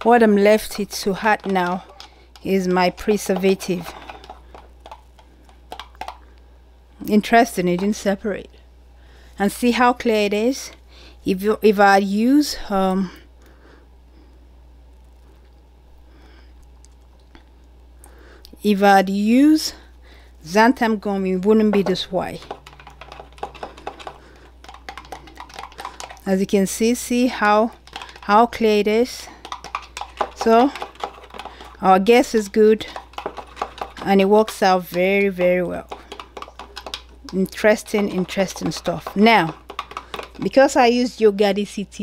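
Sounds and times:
stirring rod tapping plastic beaker: 0:00.0 - 0:06.2, 0:21.7 - 0:26.3, 0:27.8 - 0:28.8, 0:29.4 - 0:40.5.

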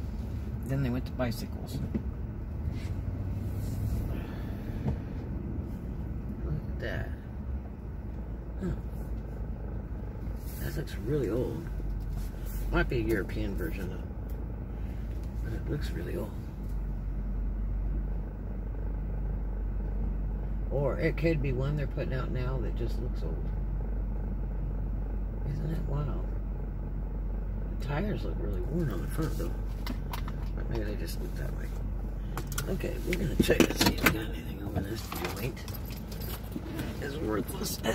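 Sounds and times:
car engine and road rumble: 0:00.0 - 0:37.9.

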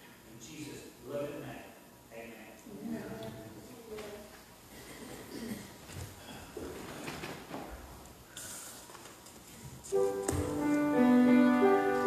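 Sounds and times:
congregation rustling and shuffling: 0:02.4 - 0:12.0.

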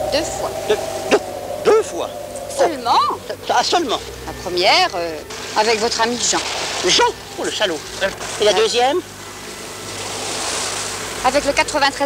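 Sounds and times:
sea surf washing: 0:00.0 - 0:12.0.

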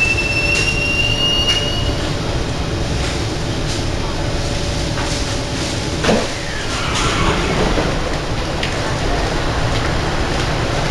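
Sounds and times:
train noise: 0:00.0 - 0:10.9
train doors sliding open: 0:05.7 - 0:08.4.

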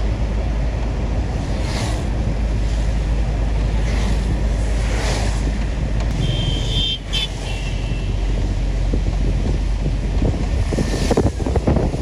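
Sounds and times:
vehicle rumbling: 0:00.0 - 0:12.0
wind buffeting microphone: 0:08.1 - 0:12.0.

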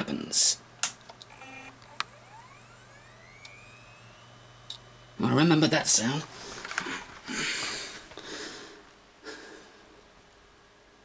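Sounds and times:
power click: 0:00.8 - 0:04.9
hard drive spinning up whine: 0:01.2 - 0:07.7.

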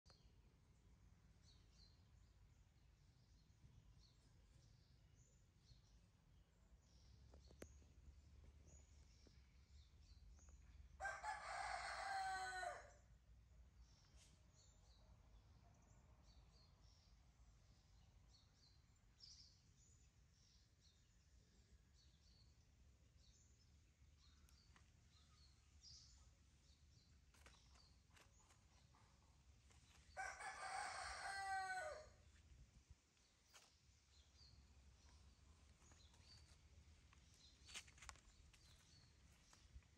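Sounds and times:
rooster crowing: 0:11.0 - 0:12.9, 0:30.2 - 0:32.2.

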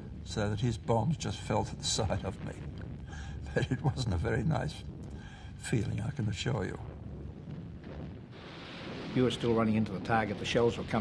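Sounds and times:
low rumble: 0:00.0 - 0:11.0
steady rushing noise: 0:00.0 - 0:11.0.

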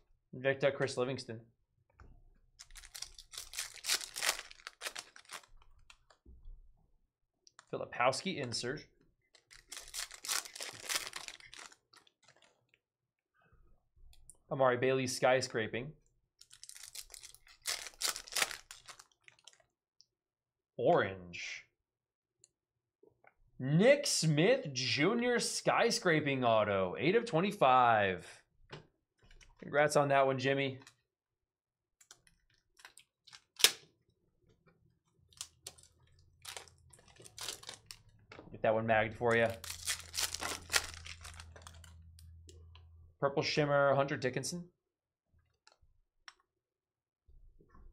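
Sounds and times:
foil wrapper tearing and crinkling: 0:02.6 - 0:06.0, 0:09.4 - 0:12.5, 0:16.4 - 0:19.6, 0:35.4 - 0:38.0, 0:39.3 - 0:41.9
cards being handled: 0:02.6 - 0:06.1, 0:09.4 - 0:12.5, 0:16.5 - 0:19.1, 0:35.4 - 0:38.0, 0:39.3 - 0:42.0
plastic card sleeve clicking: 0:02.7 - 0:05.5, 0:39.3 - 0:41.9.

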